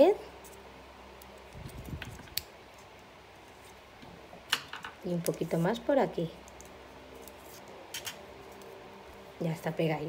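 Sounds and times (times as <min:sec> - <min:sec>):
low room hum: 0:00.0 - 0:10.0
paper handling sounds: 0:06.6 - 0:09.2.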